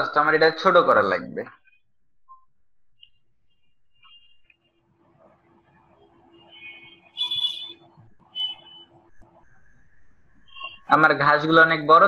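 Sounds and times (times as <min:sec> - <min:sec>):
faint steady hum: 0:00.2 - 0:12.0.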